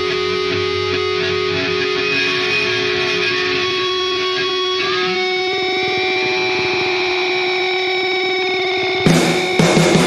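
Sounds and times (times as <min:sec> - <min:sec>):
electric guitar rock music: 0:00.0 - 0:10.0.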